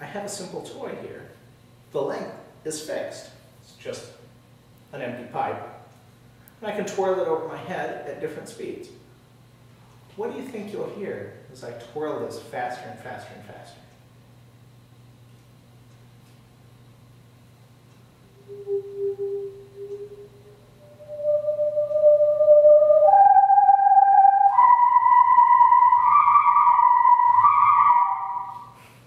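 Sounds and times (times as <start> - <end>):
whirly tube whistling: 18.2 - 28.9.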